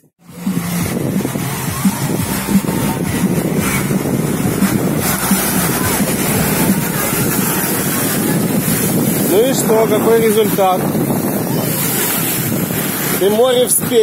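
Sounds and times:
wind buffeting microphone: 0.0s - 14.0s
small waves breaking on shore: 0.2s - 14.0s.

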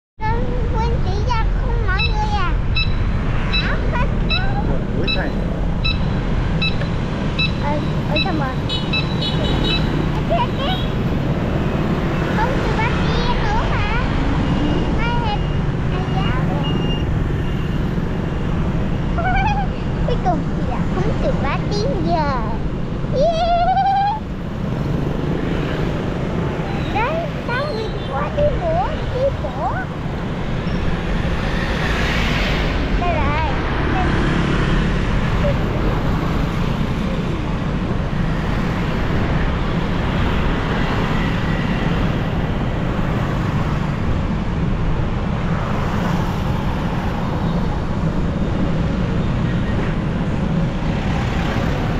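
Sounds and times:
street traffic rumble: 0.2s - 51.9s
tyres on road: 0.2s - 51.9s
short high electronic beeps: 2.0s - 8.3s.

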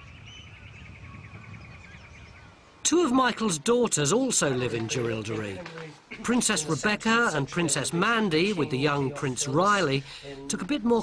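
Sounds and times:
birds chirping: 0.0s - 5.5s.

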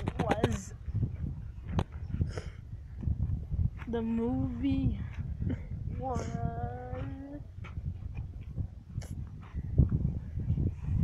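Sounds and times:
low rough outdoor rumble: 0.0s - 11.0s.

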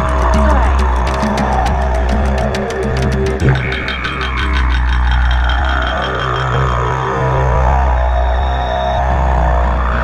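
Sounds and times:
fast percussion: 0.0s - 6.9s
deep steady bass: 0.0s - 10.0s
didgeridoo drone: 0.0s - 10.0s.

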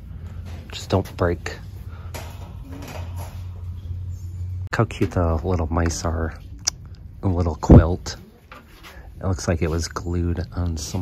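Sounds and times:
shopping cart rattling and creaking: 0.0s - 4.1s
steady low hum: 0.0s - 11.0s.

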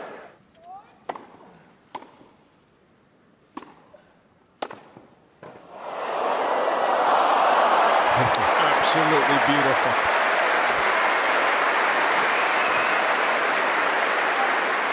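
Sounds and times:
tennis racket striking ball: 1.0s - 2.3s, 3.5s - 3.8s, 4.6s - 5.6s
crowd applause and cheering: 5.8s - 14.9s.

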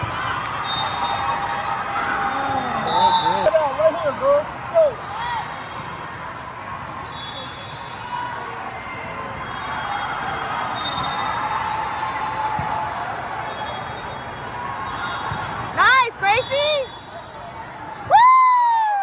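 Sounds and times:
crowd chatter in large hall: 0.0s - 18.1s.

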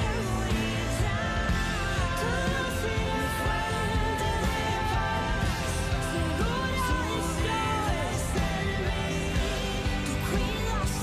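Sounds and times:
band accompaniment: 0.0s - 11.0s
woman singing: 0.0s - 11.0s.

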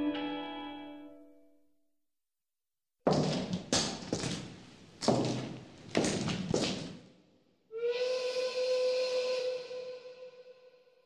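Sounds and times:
whistle-like tone: 7.8s - 10.9s.

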